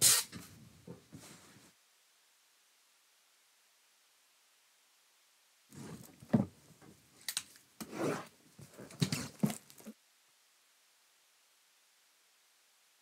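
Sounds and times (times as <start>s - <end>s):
cardboard box knocking and scraping: 5.8s - 6.5s, 8.8s - 9.9s.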